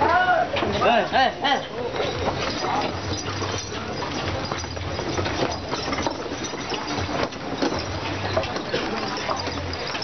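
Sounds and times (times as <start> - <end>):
carts rattling and knocking: 0.5 - 10.0
hoof clops: 2.0 - 10.0.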